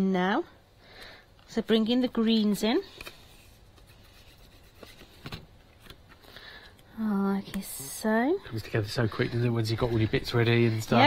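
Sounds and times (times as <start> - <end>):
light rubbing of paper: 3.0 - 5.3.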